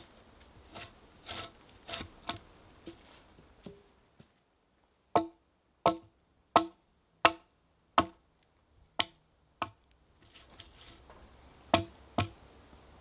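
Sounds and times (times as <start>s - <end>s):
quiet rustling: 0.0s - 4.5s, 9.9s - 11.4s
axe chopping wood: 5.2s - 8.2s, 9.0s - 9.8s, 11.7s - 12.4s.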